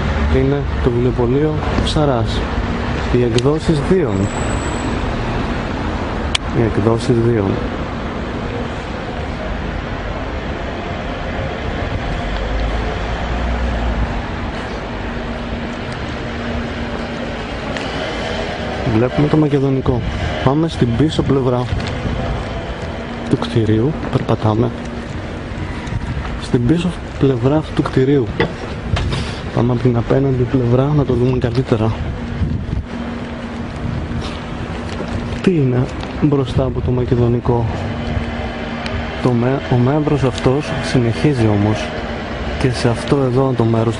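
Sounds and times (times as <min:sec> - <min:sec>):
engine hum: 0:00.0 - 0:43.9
street noise: 0:00.0 - 0:43.9
vehicle low rumble: 0:00.0 - 0:43.9.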